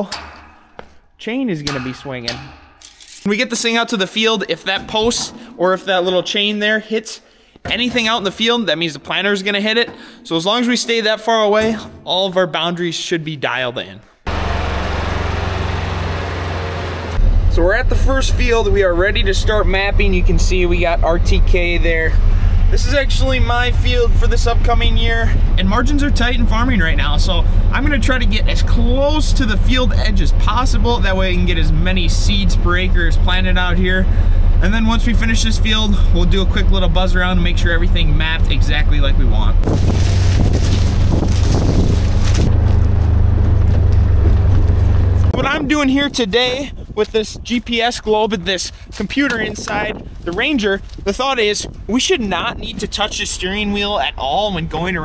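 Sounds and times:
vehicle engine running: 0:14.3 - 0:45.8
wind on microphone: 0:39.6 - 0:42.7, 0:43.3 - 0:48.2, 0:48.8 - 0:53.1.

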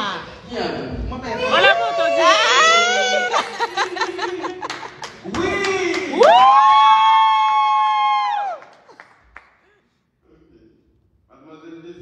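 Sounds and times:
high-pitched celebratory cry: 0:01.5 - 0:03.5.

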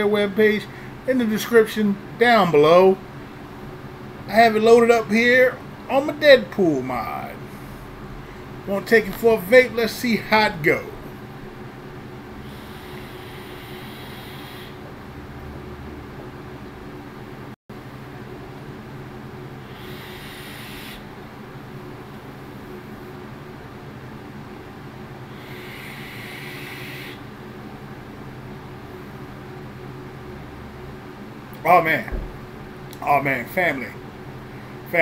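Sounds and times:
steady low hum: 0:00.0 - 0:35.0
hissing vape draws: 0:12.4 - 0:14.8, 0:19.7 - 0:21.0.

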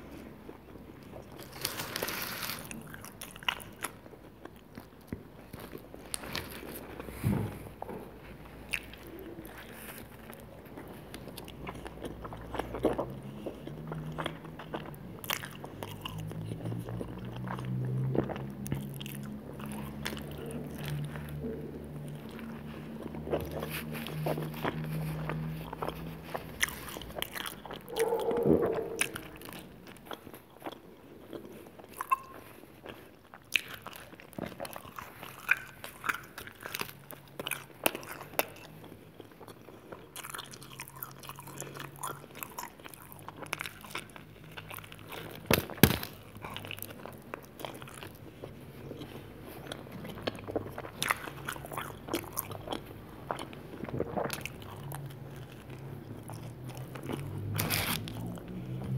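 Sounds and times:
chewing crunchy pizza crust: 0:00.0 - 0:58.9.

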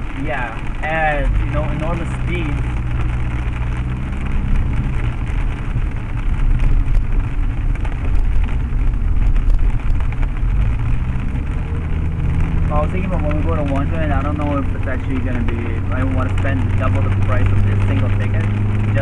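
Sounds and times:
car engine and road drone: 0:00.0 - 0:19.0
tyres hissing on wet pavement: 0:00.0 - 0:19.0.

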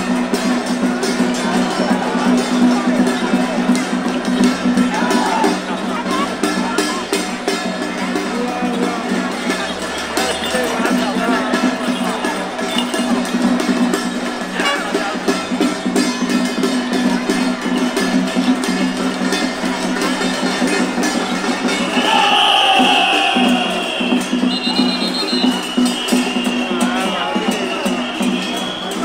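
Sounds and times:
crowd noise: 0:00.0 - 0:29.0
procession music with percussion: 0:00.0 - 0:29.0.

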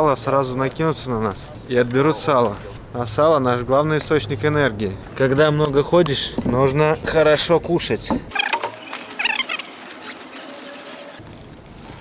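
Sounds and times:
small squeaks: 0:08.3 - 0:11.2
rustling through backpack: 0:08.8 - 0:12.0
backpack being unzipped: 0:08.9 - 0:12.0.

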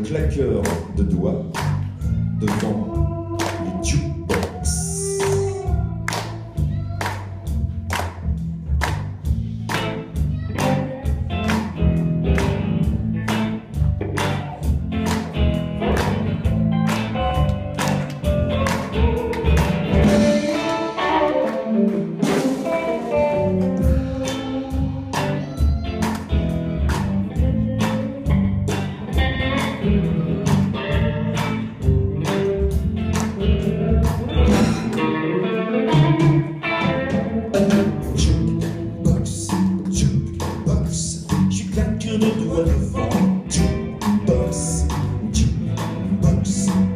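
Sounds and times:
blues band playing: 0:00.0 - 0:46.9.

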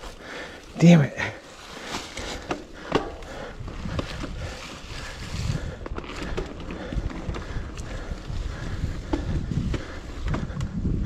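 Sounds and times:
bike tyres on dirt trail: 0:00.0 - 0:11.0
bike knocking and rattling: 0:01.8 - 0:11.0
wind rumble on microphone: 0:03.1 - 0:11.0.

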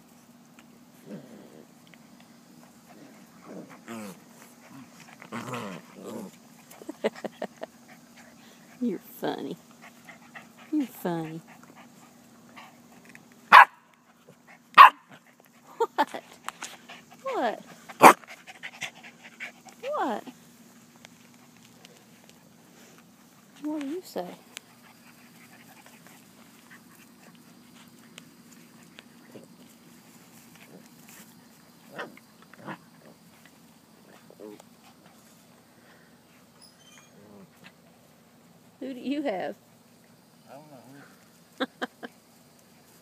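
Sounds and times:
puppy barking: 0:13.5 - 0:13.9, 0:14.8 - 0:15.1, 0:18.0 - 0:18.2.

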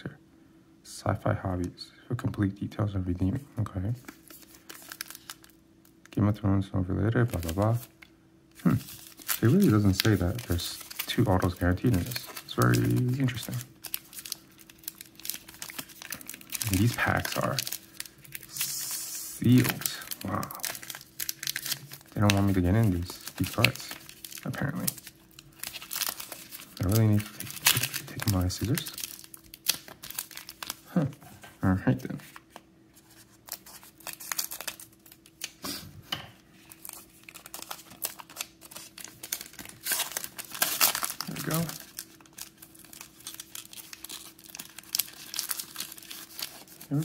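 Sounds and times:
foil wrapper crinkling: 0:04.0 - 0:06.2, 0:07.1 - 0:31.2, 0:31.8 - 0:35.6, 0:36.6 - 0:47.0.

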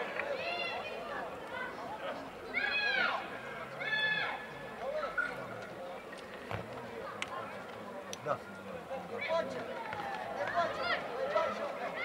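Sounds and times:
scattered calls and chatter: 0:00.0 - 0:12.0.

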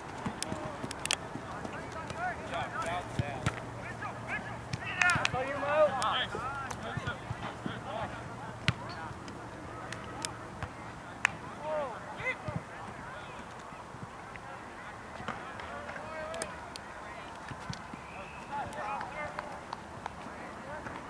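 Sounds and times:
soccer ball kicks: 0:00.0 - 0:09.1, 0:10.6 - 0:11.4, 0:12.3 - 0:13.2.

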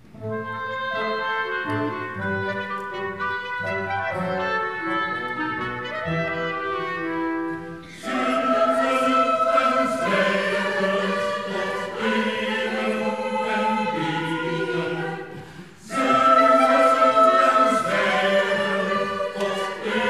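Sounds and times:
choir singing with orchestra: 0:04.8 - 0:20.0.

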